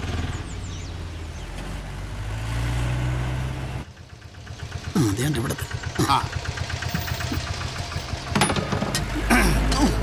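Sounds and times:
small vehicle engine running: 0:00.0 - 0:10.0.

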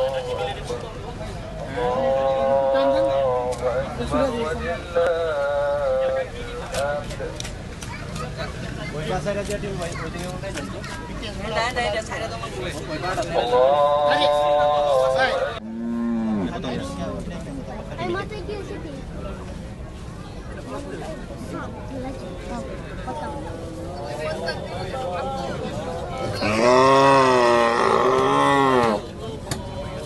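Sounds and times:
men's voices: 0:00.0 - 0:10.8, 0:12.4 - 0:17.8, 0:22.4 - 0:30.0
cow bellowing: 0:26.3 - 0:29.0.

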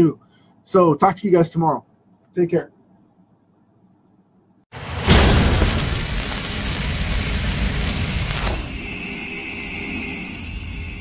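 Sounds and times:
high hiss: 0:04.8 - 0:11.0
rushing crackling noise: 0:04.8 - 0:11.0.

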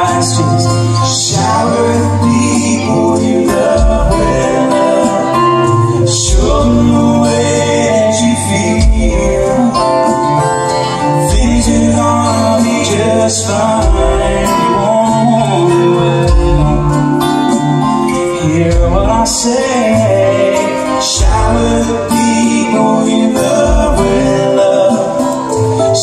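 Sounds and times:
acoustic guitars: 0:00.0 - 0:26.0
keyboard chords: 0:00.0 - 0:26.0
live band playing mellow song: 0:00.0 - 0:26.0.

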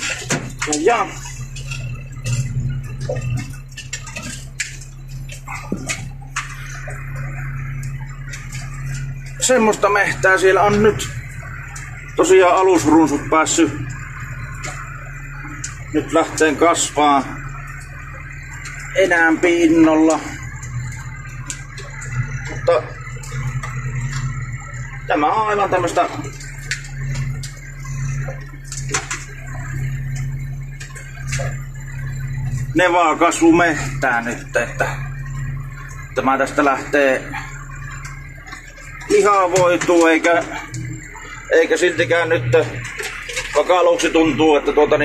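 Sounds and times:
cab knocks and rattles: 0:00.0 - 0:25.1
tractor engine droning: 0:00.0 - 0:45.0.

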